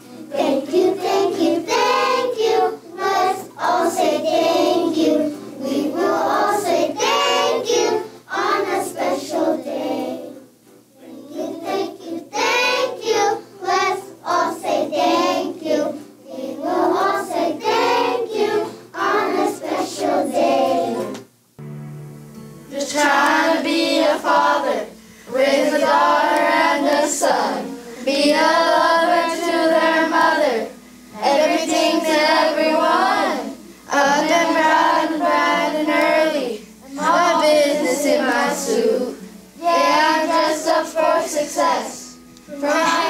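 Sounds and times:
children singing in unison: 0.0 - 21.2, 22.7 - 43.0.

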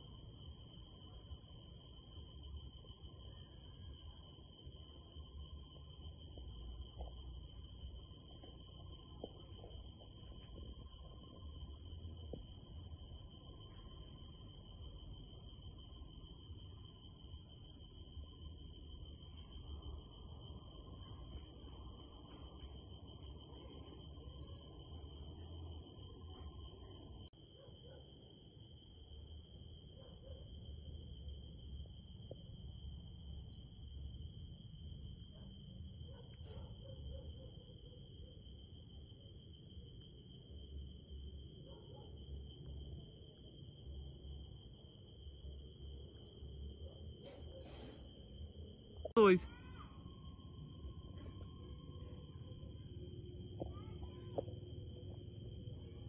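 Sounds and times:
crickets and insects trilling: 0.0 - 27.6, 37.8 - 56.0.

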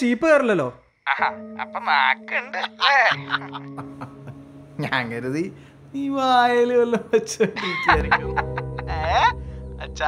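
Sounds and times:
soft background music: 0.0 - 10.0
man speaking in sing-song tone: 4.8 - 8.2.

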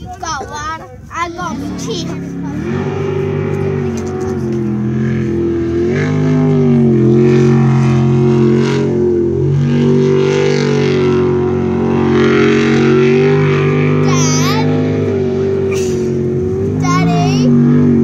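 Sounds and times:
boat engine running hard: 0.0 - 18.0.

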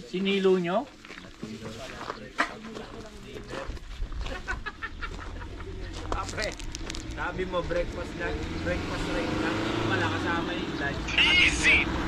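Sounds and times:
people talking: 1.3 - 6.6, 7.2 - 12.0.

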